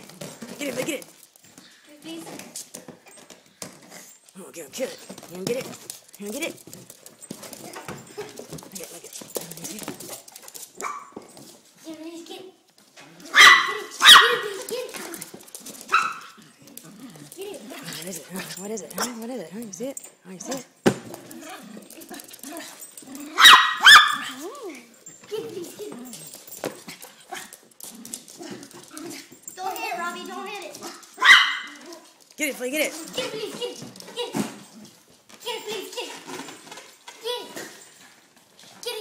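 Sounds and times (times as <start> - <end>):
dog barking: 10.8 - 11.2, 13.3 - 14.6, 15.9 - 16.4, 23.3 - 24.4, 31.1 - 31.8
person speaking: 16.9 - 20.8.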